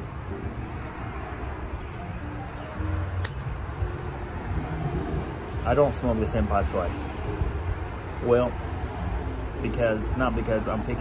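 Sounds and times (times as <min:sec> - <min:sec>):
lighter click: 0:03.2 - 0:03.4.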